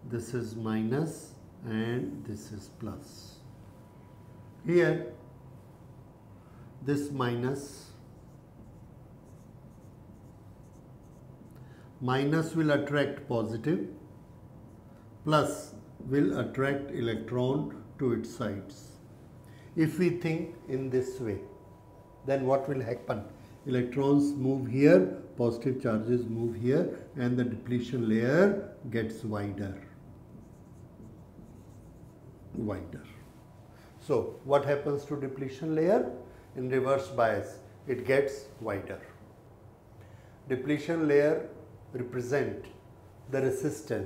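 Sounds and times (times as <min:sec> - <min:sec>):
low room hum: 0:00.0 - 0:44.0
marker writing on whiteboard: 0:08.1 - 0:11.4, 0:30.4 - 0:32.4.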